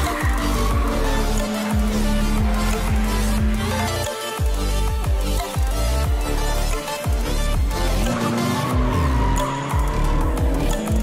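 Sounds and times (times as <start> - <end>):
electronic music with heavy beat: 0.0 - 11.0
turbo car engine running: 0.0 - 11.0.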